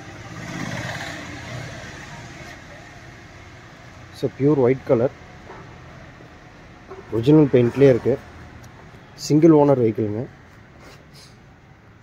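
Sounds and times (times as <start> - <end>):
vehicle passing by: 0.0 - 3.1, 7.1 - 8.7.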